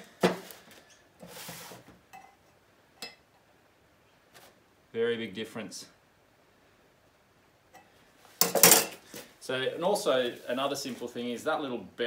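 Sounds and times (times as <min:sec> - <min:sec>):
rustling scrape: 0:00.4 - 0:02.0, 0:10.0 - 0:11.2.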